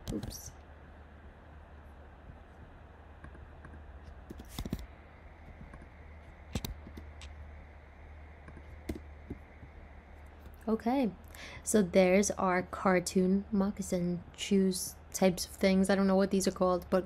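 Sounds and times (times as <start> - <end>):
faint low hum: 0.0 - 17.0
computer mouse clicks: 3.2 - 7.4.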